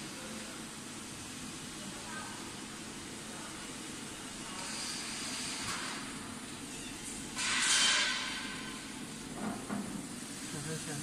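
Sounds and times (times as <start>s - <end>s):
laser engraving machine hiss: 0.0s - 9.0s, 10.1s - 11.0s.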